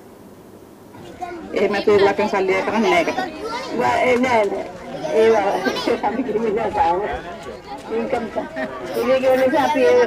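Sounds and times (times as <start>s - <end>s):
people talking: 1.0s - 10.0s.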